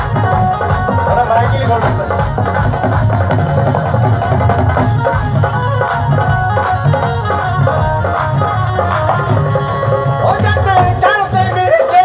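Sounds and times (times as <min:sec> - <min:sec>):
dhol drum beat with bass: 0:00.0 - 0:12.0.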